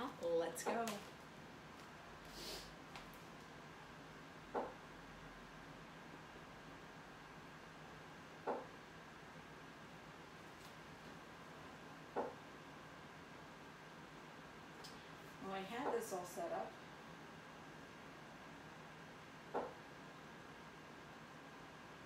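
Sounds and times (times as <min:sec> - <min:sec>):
faint steady hiss: 0:00.0 - 0:22.0.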